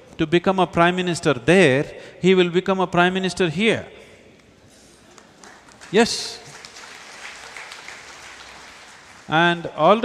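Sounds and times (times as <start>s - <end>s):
audience applauding: 5.1s - 9.3s.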